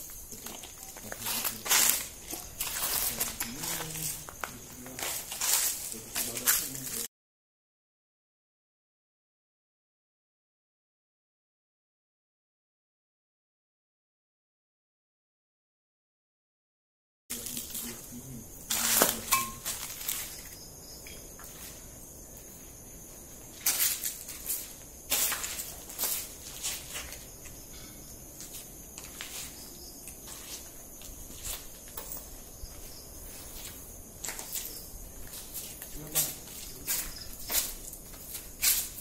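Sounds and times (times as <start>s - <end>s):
night insects chirring: 0.0s - 7.1s, 17.3s - 39.0s.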